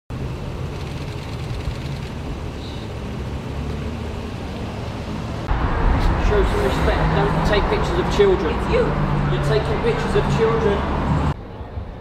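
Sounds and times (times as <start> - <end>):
low rumble of street traffic: 0.1 - 12.0.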